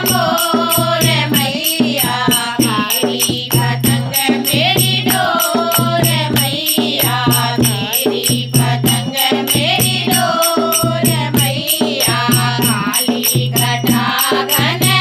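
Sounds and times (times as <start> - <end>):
women singing in unison: 0.0 - 15.0.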